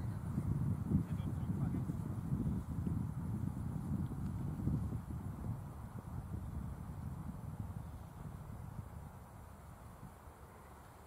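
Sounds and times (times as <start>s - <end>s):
wind buffeting microphone: 0.0s - 10.4s.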